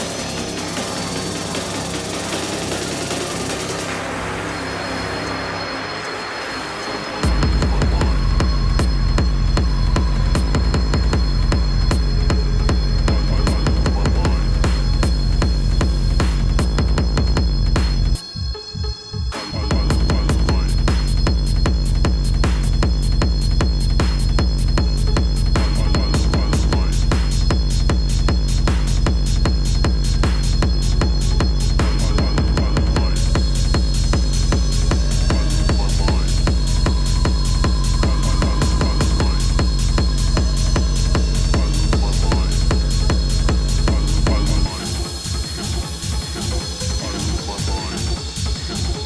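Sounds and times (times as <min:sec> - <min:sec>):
hard industrial techno: 0:00.0 - 0:49.0
hi-hats: 0:00.0 - 0:49.0
steady high tone: 0:00.0 - 0:49.0
rumbling bass: 0:07.1 - 0:49.0
heavy kick drum: 0:07.2 - 0:18.9, 0:19.6 - 0:49.0.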